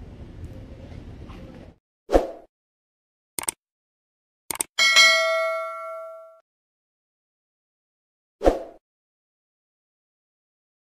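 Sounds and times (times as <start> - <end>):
notification bell ding: 4.8 - 6.4.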